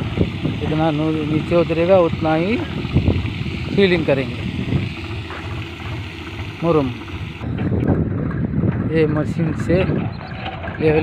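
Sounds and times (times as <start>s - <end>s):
water spraying onto gravel: 0.0s - 7.4s
wind buffeting microphone: 0.0s - 11.0s.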